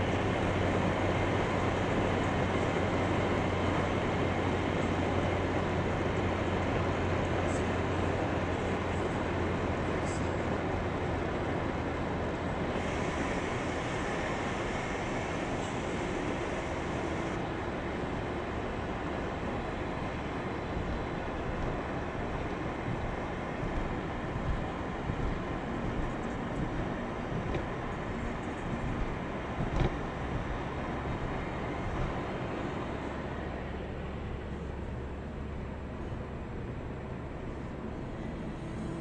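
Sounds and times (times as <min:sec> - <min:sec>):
road and engine rumble: 0:00.0 - 0:39.0.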